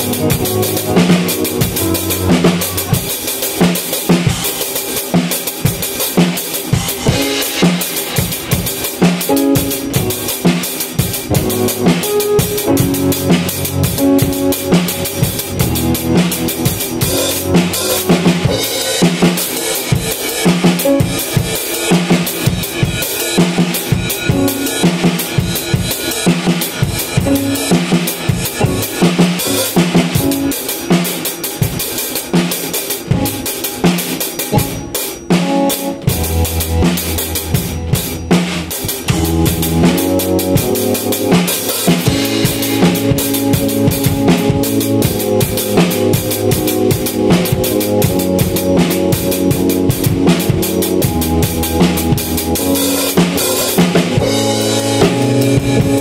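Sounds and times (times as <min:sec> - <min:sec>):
drum kit groove: 0:00.0 - 0:56.0
keyboard chords: 0:00.0 - 0:56.0
deep sustained bass notes: 0:36.1 - 0:38.3.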